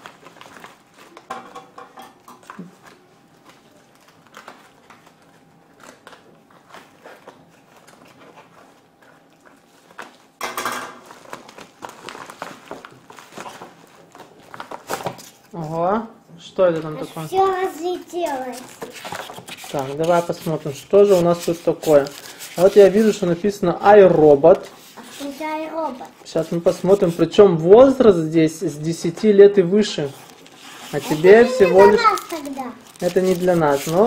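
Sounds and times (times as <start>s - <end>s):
mailer bag crinkling and tearing: 11.0s - 15.4s, 21.2s - 23.3s, 30.2s - 34.0s.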